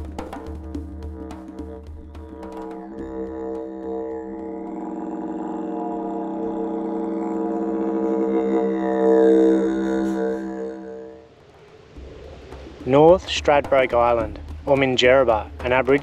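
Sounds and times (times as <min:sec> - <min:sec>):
didgeridoo drone: 0:00.0 - 0:16.0.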